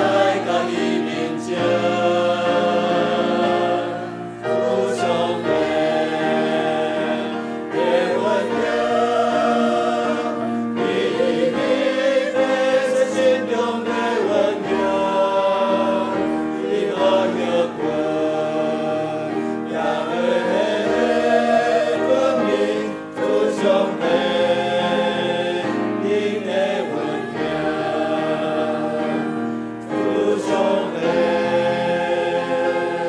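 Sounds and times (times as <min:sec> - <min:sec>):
mixed choir singing a hymn: 0:00.0 - 0:33.0.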